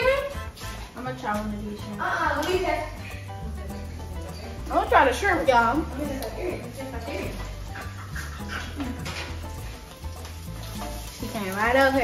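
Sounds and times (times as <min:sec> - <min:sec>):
background music with bass: 0:00.0 - 0:12.0
food sizzling in oil: 0:00.0 - 0:12.0.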